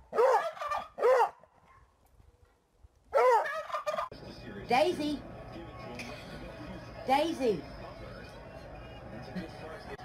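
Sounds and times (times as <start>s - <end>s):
turkey gobbling: 0.1s - 1.6s, 3.1s - 4.2s.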